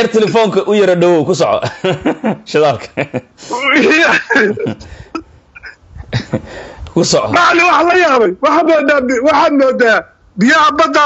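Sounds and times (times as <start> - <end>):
man laughing quietly: 1.7 - 6.6.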